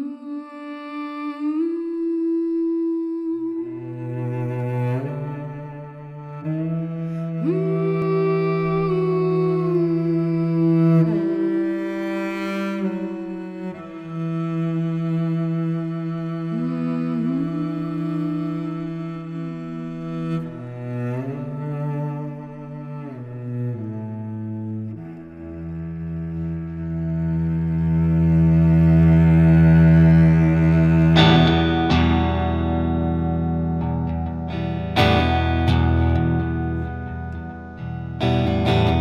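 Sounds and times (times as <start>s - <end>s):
string melody sliding up: 0.0s - 39.0s
woman humming long notes: 0.0s - 39.0s
low bowed cello note: 1.5s - 39.0s.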